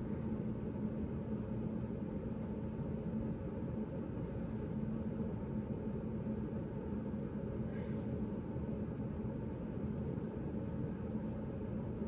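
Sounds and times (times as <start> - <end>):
air conditioning humming: 0.0 - 12.0.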